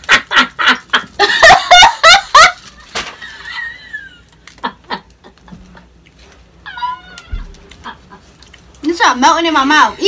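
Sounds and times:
foil wrapper crinkling: 0:02.4 - 0:03.5.

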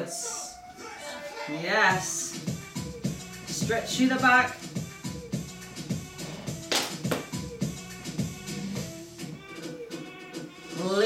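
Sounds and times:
workout music through speaker: 0:00.0 - 0:06.0, 0:06.6 - 0:11.0.

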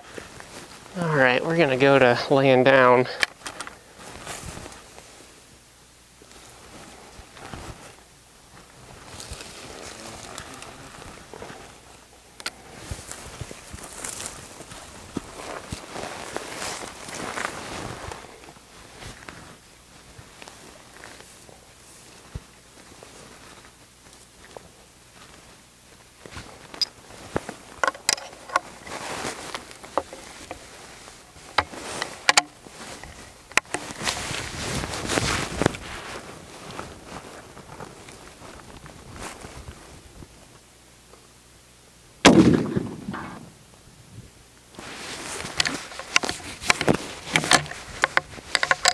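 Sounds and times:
clothing and dry grass rustling: 0:00.0 - 0:40.9, 0:44.6 - 0:48.9.

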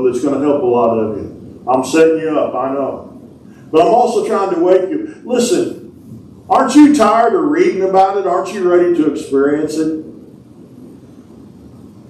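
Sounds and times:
low room rumble: 0:00.0 - 0:12.0.

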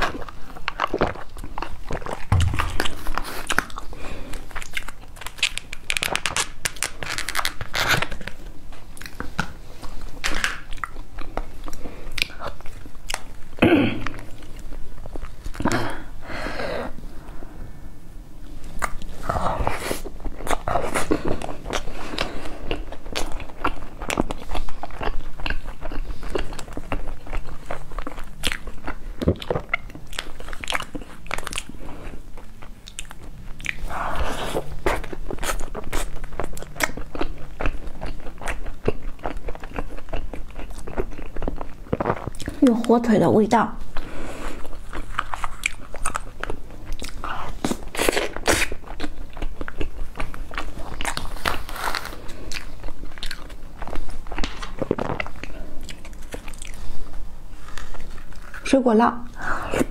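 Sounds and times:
person chewing: 0:00.0 - 0:16.2, 0:18.4 - 0:42.7, 0:43.9 - 0:58.6.

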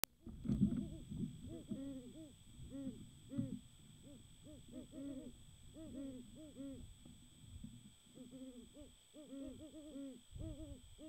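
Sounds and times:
owls hooting: 0:00.6 - 0:07.1, 0:08.1 - 0:11.0.

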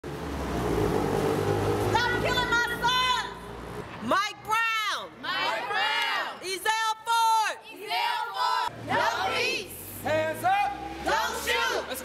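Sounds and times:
car engine and tyre rumble: 0:00.0 - 0:04.0.

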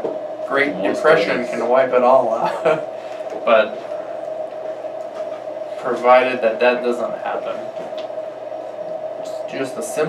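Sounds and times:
steady one-note hum: 0:00.0 - 0:10.0.

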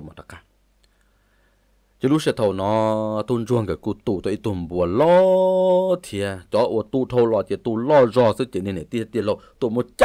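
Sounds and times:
man narrating: 0:00.0 - 0:00.5, 0:02.0 - 0:10.0
faint click: 0:00.8 - 0:01.2.

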